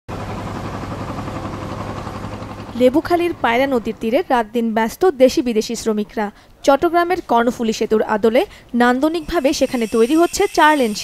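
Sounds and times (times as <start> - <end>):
boat engine humming: 0.1 - 4.5.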